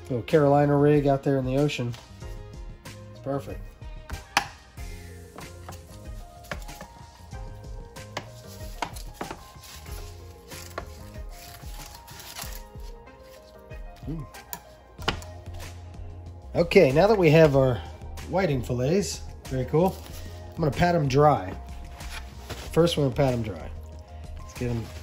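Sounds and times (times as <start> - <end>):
knife cutting fish on board: 8.0 - 10.0, 14.4 - 15.3.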